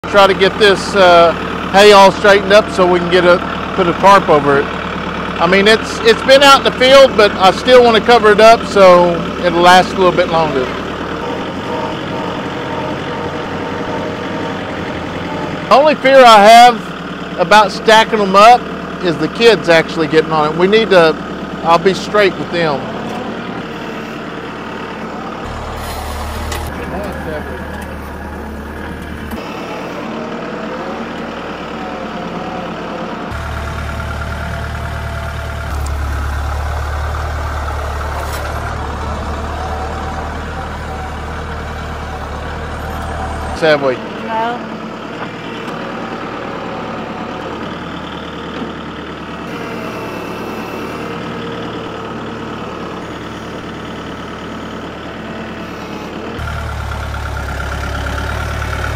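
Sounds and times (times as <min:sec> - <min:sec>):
tractor engine running: 0:00.0 - 0:58.9
thin whine: 0:49.5 - 0:51.2.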